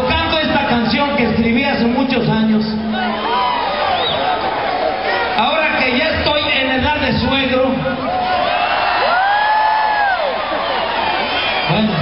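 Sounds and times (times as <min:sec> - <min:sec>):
crowd cheering and whooping: 0:02.9 - 0:05.4, 0:08.0 - 0:12.0.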